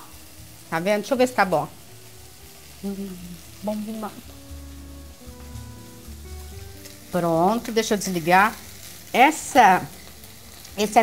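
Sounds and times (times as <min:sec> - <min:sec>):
chicken frying in a pan: 0:00.0 - 0:11.0
person humming while tasting: 0:02.7 - 0:03.9.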